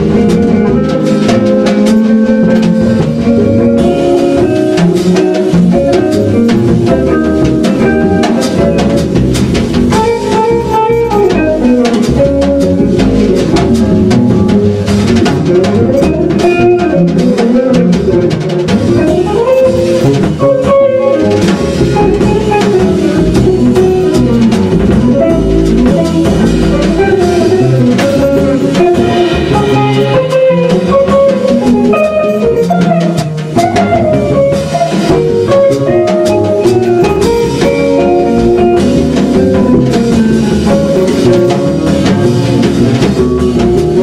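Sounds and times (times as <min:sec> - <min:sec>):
bass notes: 0:00.0 - 0:44.0
drum and cymbal strokes: 0:00.0 - 0:44.0
jazz guitar lines: 0:00.0 - 0:44.0.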